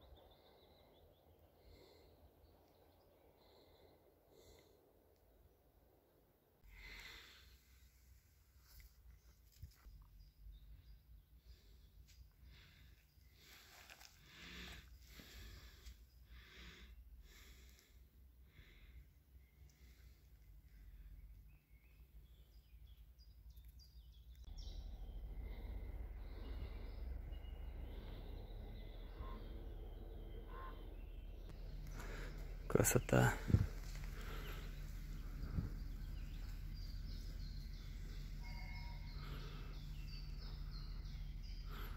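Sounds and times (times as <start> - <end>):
faint birds chirping: 0.0 - 41.9
outdoor noise: 0.0 - 41.9
low rumble: 24.5 - 41.9
steady low hum: 24.5 - 41.9.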